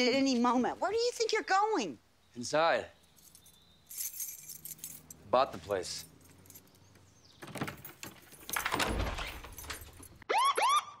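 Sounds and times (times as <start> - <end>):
keys jangling in a lock: 3.2 - 5.2, 5.9 - 10.2
door opening: 6.3 - 10.2.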